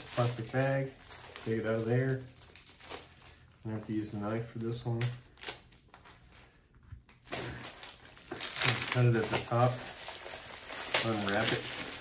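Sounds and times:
plastic bag crinkling: 0.0s - 6.6s, 7.2s - 12.0s.

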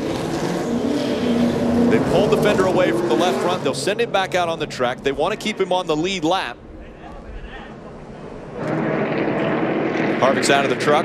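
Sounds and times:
race truck engine drone: 0.0s - 11.0s.

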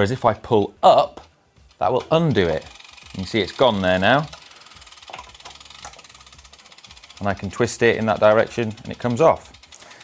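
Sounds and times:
bike freehub ticking: 1.6s - 10.0s.

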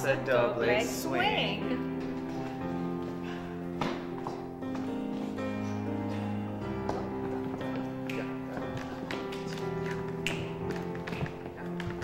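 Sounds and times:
dance music: 0.0s - 12.0s
dance shoes tapping on hardwood: 1.9s - 6.0s, 6.7s - 12.0s.

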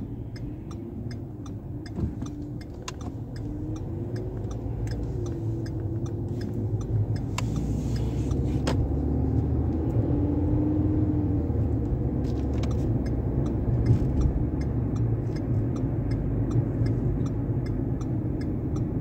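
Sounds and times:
car cabin road rumble: 0.0s - 19.0s
regular light ticking: 0.0s - 19.0s.

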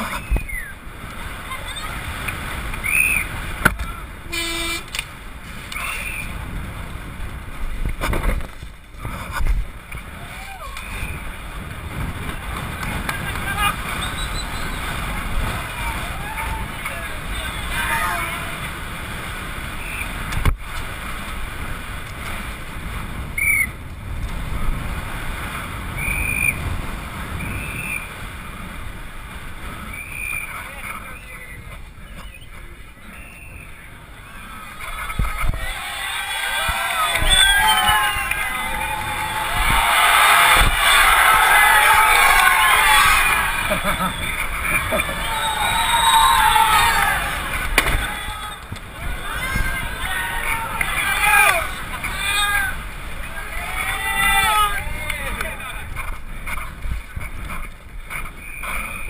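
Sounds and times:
bike wheels rolling on pavement: 0.0s - 59.0s
rushing wind: 0.0s - 59.0s
horn blast: 4.3s - 5.0s.

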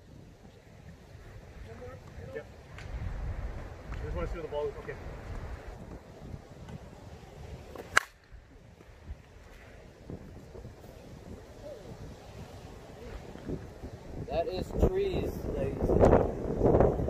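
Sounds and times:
bat striking softball: 7.7s - 8.3s.

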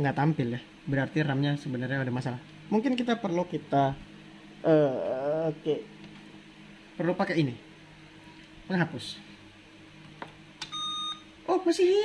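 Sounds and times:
short electronic beep: 10.7s - 11.3s.

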